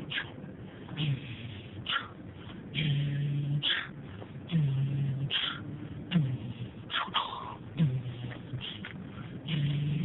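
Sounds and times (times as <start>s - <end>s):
man humming: 0.0s - 10.0s
road noise in car: 0.0s - 10.0s.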